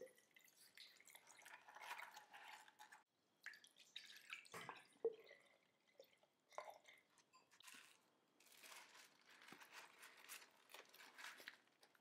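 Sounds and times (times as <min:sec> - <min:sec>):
water trickling into stone sink: 0:00.0 - 0:07.6
drips and light clicks: 0:00.0 - 0:07.7.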